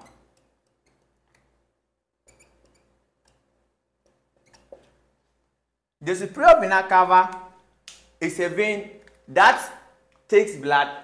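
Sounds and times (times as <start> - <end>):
marker pen writing on whiteboard: 0.0 - 1.6, 2.2 - 5.2.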